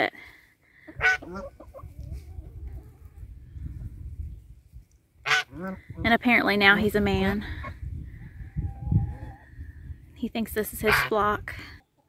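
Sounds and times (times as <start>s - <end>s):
geese honking: 0.9s - 1.8s, 5.2s - 5.8s.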